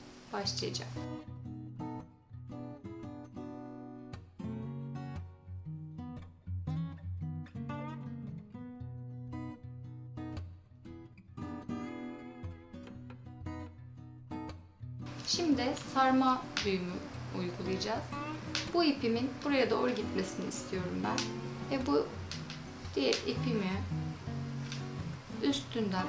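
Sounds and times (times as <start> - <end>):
acoustic guitar picking: 1.0 - 26.0.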